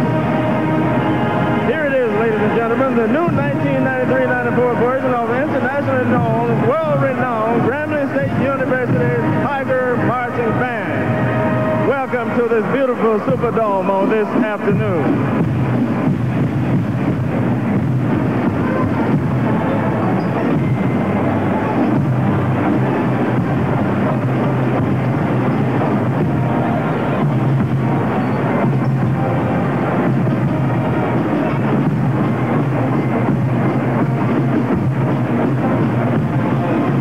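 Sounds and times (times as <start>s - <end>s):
crowd noise echoing: 0.0s - 37.0s
marching band brass and drums: 0.0s - 37.0s.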